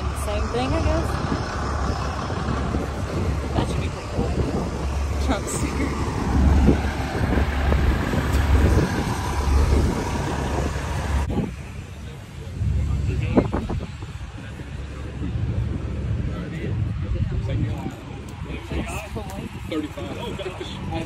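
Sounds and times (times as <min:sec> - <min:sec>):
vehicle engines rumbling: 0:00.0 - 0:21.0.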